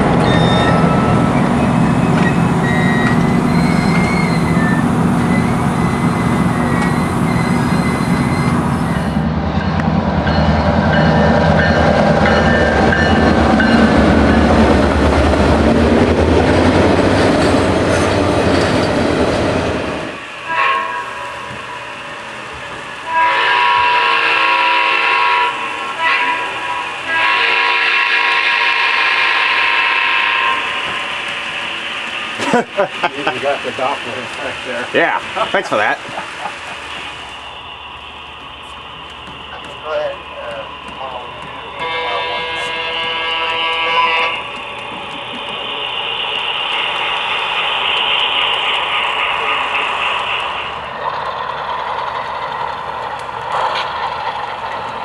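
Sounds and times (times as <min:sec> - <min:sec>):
freight train wheels rumbling: 0:00.0 - 0:55.0
wheel squeal: 0:00.1 - 0:09.2
locomotive air horn: 0:20.4 - 0:21.4, 0:23.0 - 0:30.9, 0:41.7 - 0:44.5.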